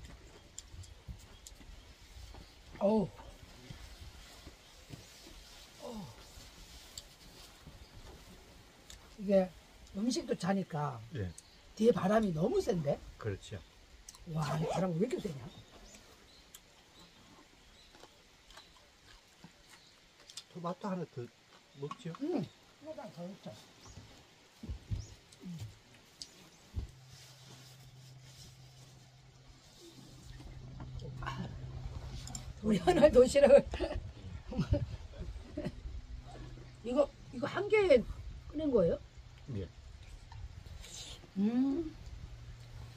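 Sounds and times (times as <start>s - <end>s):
steady low hum: 24.6s - 42.9s
wind buffeting microphone: 30.4s - 39.2s.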